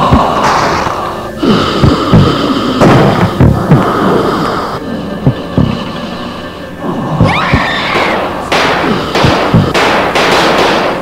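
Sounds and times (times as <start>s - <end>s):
deep booming hits: 1.8s - 3.8s.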